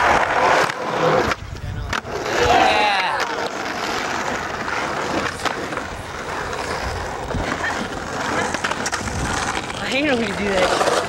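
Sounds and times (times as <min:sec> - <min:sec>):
skateboard wheels rolling on concrete: 0:00.0 - 0:11.0
people's voices: 0:01.2 - 0:11.0.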